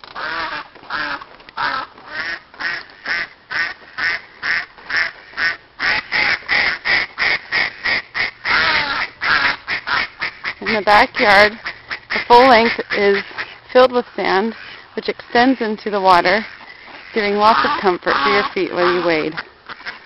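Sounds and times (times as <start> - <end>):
ducks quacking: 0.2 - 20.0.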